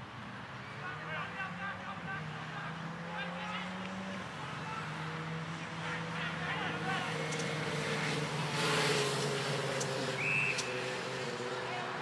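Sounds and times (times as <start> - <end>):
distant shouting voices: 0.6 - 12.0
vehicle engine drone: 0.8 - 12.0.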